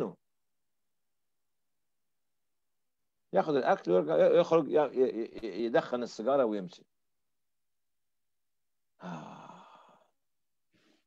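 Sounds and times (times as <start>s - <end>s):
man sighing: 9.0s - 10.1s.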